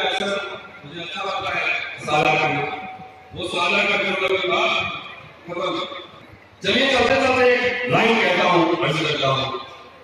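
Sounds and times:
man speaking over public address: 0:00.0 - 0:10.0.

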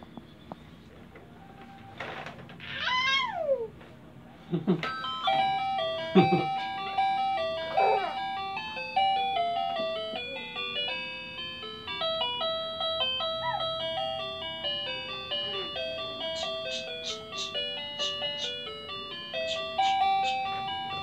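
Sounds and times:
baby squealing: 0:02.6 - 0:03.7
baby vocal sounds: 0:02.6 - 0:03.7, 0:07.7 - 0:08.2
toy beeping melody: 0:04.8 - 0:21.0.

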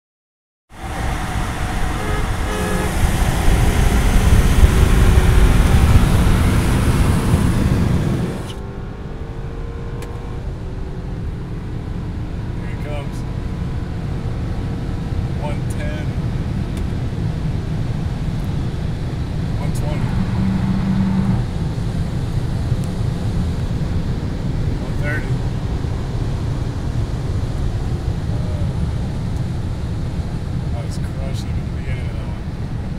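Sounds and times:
car engine and road rumble: 0:00.7 - 0:32.9.

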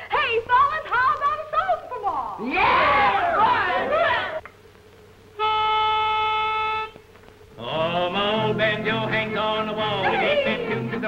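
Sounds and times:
pitch pipe reed note: 0:05.4 - 0:07.0.

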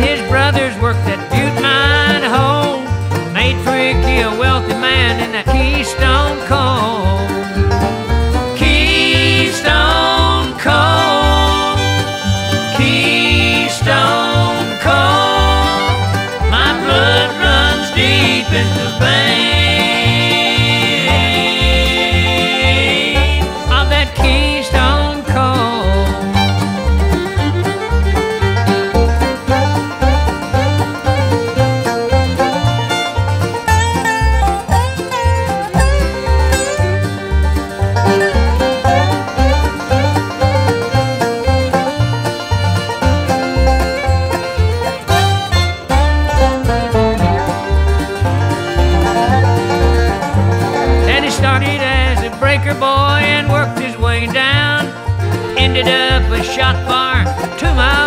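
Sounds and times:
picked string lead lines: 0:00.0 - 0:58.0
pulsing bass beat: 0:00.0 - 0:58.0.

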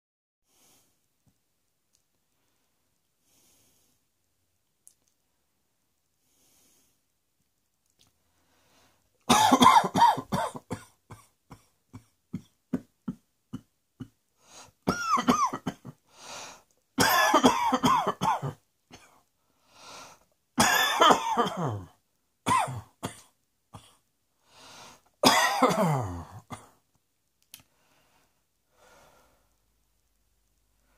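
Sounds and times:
person coughing: 0:09.3 - 0:14.2, 0:14.9 - 0:16.0, 0:17.0 - 0:19.2, 0:20.6 - 0:21.9, 0:22.5 - 0:24.0, 0:25.2 - 0:26.8.

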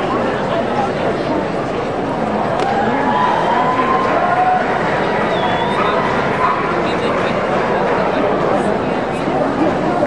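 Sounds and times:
crowd chatter echoing in hall: 0:00.0 - 0:10.0.

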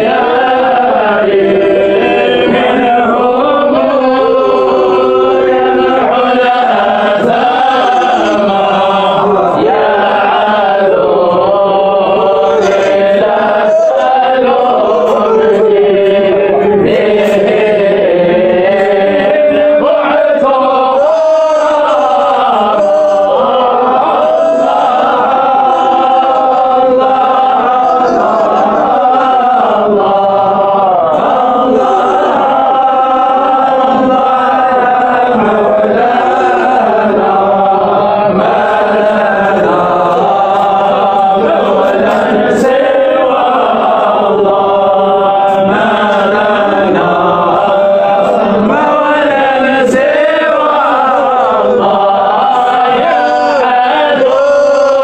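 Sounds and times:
men chanting devotional chant: 0:00.0 - 0:55.0.

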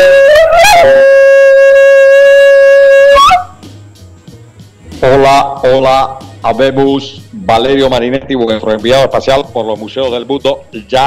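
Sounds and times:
wind instrument note bending upward: 0:00.0 - 0:03.6.

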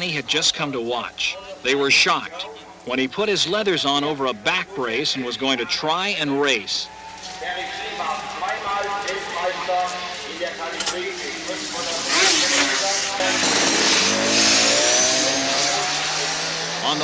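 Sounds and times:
voices: 0:00.0 - 0:14.3, 0:15.4 - 0:17.0
racing motorcycle engines revving: 0:07.1 - 0:17.0.

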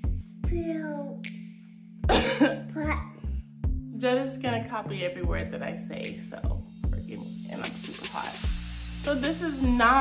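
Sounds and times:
background music: 0:00.0 - 0:10.0
cough-like burst: 0:02.1 - 0:02.6.

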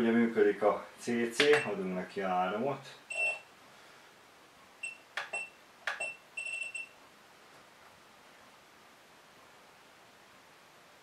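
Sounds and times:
short high beeps: 0:03.1 - 0:03.4, 0:04.8 - 0:07.0.

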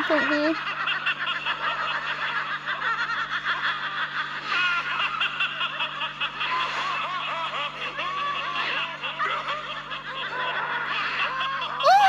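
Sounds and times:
people laughing: 0:00.0 - 0:12.0.

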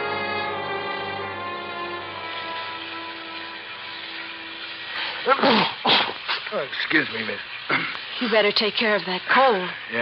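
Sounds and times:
sustained orchestral string chord: 0:00.0 - 0:04.9.

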